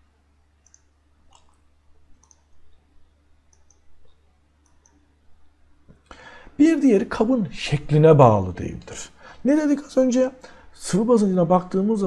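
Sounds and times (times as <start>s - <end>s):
low steady hum: 0.0s - 12.0s
computer mouse clicks: 0.6s - 2.7s, 3.5s - 5.0s.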